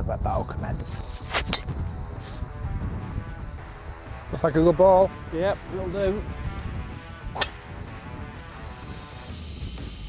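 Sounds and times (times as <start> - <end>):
wind rumble on microphone: 0.0 - 9.1
golf club striking ball: 6.5 - 8.0.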